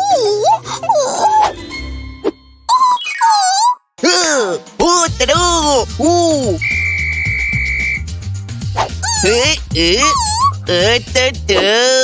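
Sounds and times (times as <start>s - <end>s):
background music: 0.0s - 2.8s, 4.0s - 12.0s
cartoon voices exclaiming: 2.7s - 4.6s, 9.0s - 11.0s
whistle blast: 6.5s - 8.2s.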